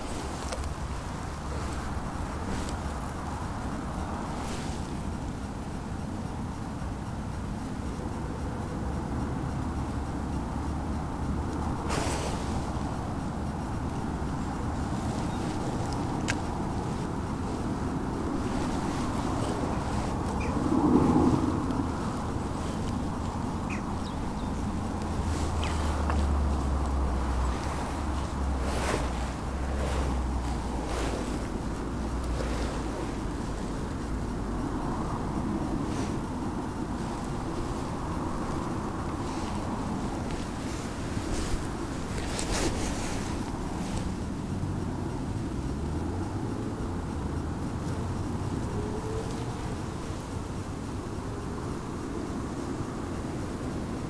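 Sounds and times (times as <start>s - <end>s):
distant road traffic: 0.0s - 54.0s
wind on microphone: 9.5s - 54.0s.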